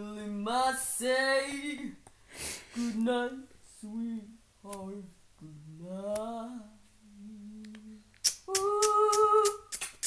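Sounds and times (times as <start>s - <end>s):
person humming: 4.0s - 10.0s.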